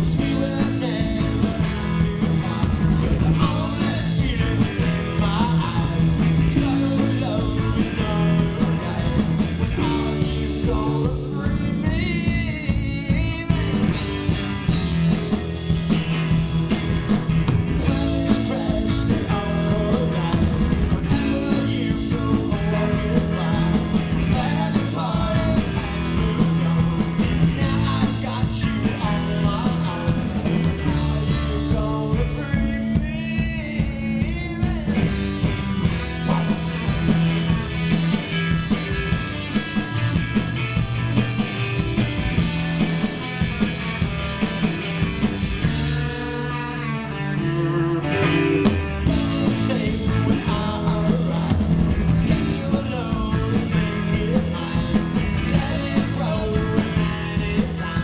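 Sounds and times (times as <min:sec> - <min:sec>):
drums: 0:00.0 - 0:58.0
electric bass: 0:00.0 - 0:58.0
electric guitars: 0:00.0 - 0:58.0.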